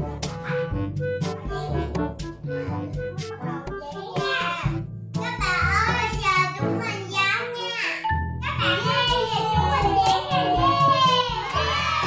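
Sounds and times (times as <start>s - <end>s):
background music with beat: 0.0s - 7.0s, 8.1s - 12.0s
children shouting and cheering: 3.8s - 12.0s.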